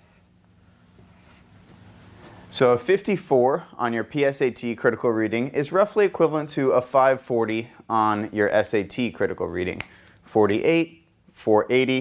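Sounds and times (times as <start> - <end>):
marker writing on a whiteboard: 0.0 - 0.3, 1.0 - 1.6.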